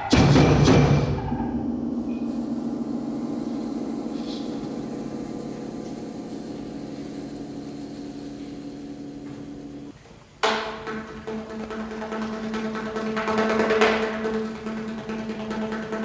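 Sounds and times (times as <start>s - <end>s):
percussion chord ringing: 0.2s - 16.0s.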